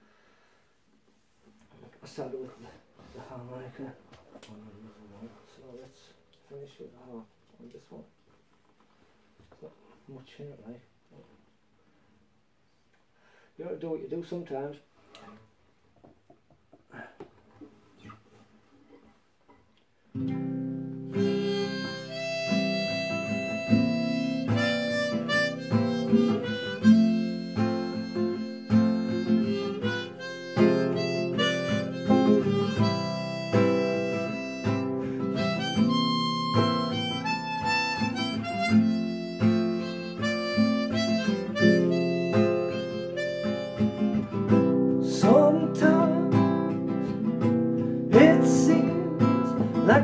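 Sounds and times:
strummed nylon-string guitar: 20.2 - 50.0
harmonica notes: 21.0 - 50.0.

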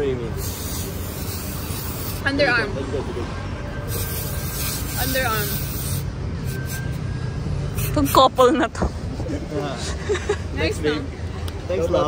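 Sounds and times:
city traffic rumble: 0.0 - 12.0.

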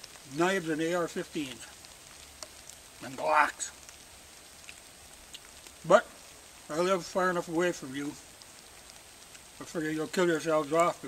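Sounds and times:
faint steady rain: 0.0 - 11.0
light water drips: 0.0 - 11.0.

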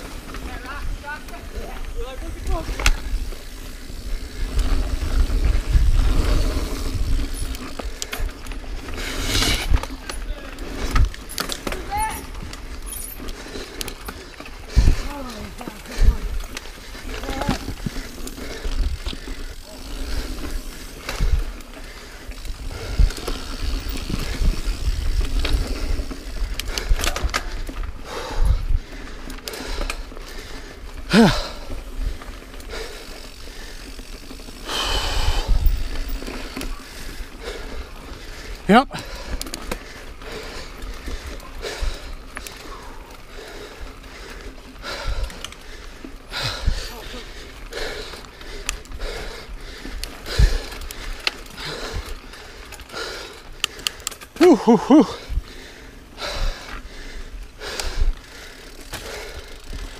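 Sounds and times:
bike knocking and rattling: 0.0 - 59.9
bike tyre and wind rumble: 0.0 - 59.9.

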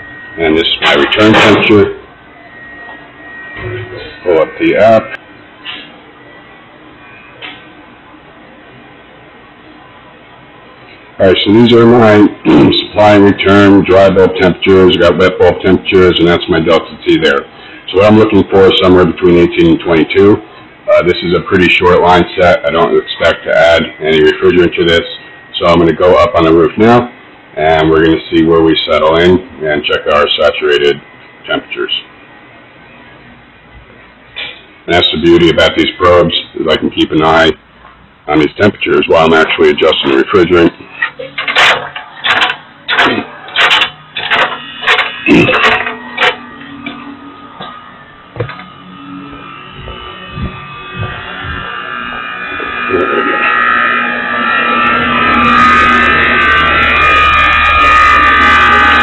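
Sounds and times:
furnace blower airflow: 37.6 - 59.0.

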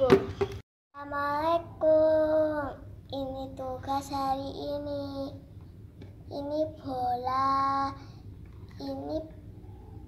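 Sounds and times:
girl singing: 1.0 - 5.4, 6.3 - 8.0, 8.8 - 9.4.

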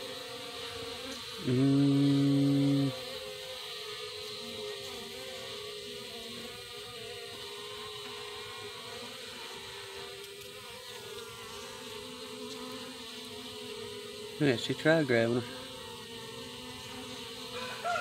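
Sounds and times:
bees humming in hive: 0.0 - 18.0.

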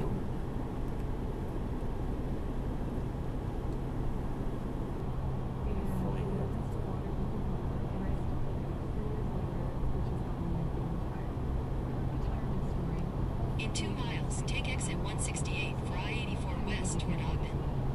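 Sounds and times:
car road and engine drone: 0.0 - 17.9.

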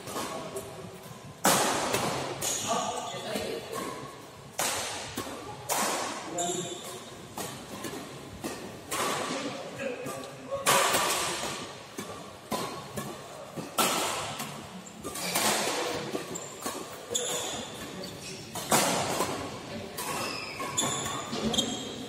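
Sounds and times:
rackets hitting shuttlecock: 0.0 - 0.7, 1.3 - 22.0.

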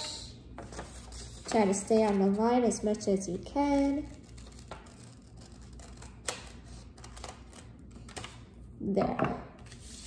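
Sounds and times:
scissors snipping paper: 3.7 - 8.4.

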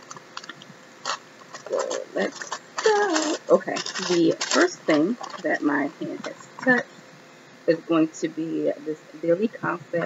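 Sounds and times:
packaging clicks: 0.0 - 5.5
woman mumbling: 1.7 - 6.8.

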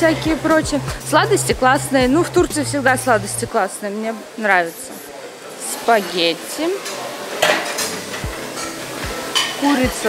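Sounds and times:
metal dishes and cutlery clinking: 6.7 - 10.0.

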